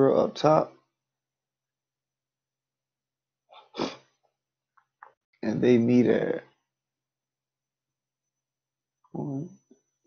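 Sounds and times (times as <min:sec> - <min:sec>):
man sneezing: 0:03.7 - 0:04.0.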